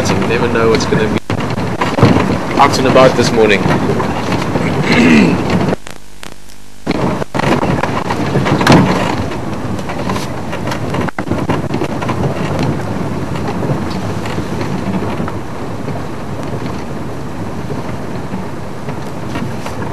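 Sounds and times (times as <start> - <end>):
wind buffeting microphone: 0.0 - 6.0, 6.7 - 19.9
vehicle road and engine noise: 0.0 - 19.9.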